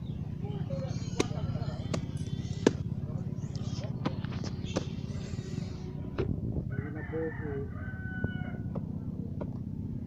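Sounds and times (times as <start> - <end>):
rooster crowing: 6.7 - 8.8.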